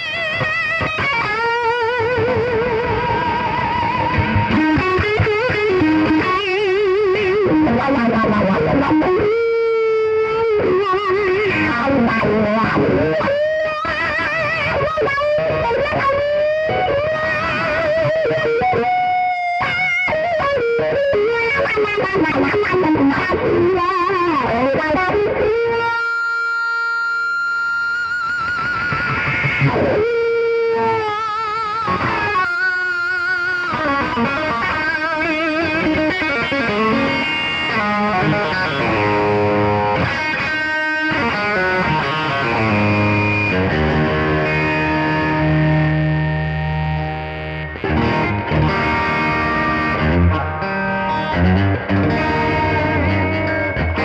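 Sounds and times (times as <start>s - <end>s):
overdriven electric guitar lead: 0.0s - 54.0s.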